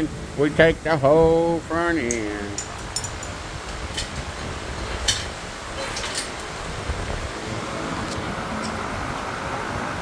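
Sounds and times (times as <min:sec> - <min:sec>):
workshop rumble and hiss: 0:00.0 - 0:10.0.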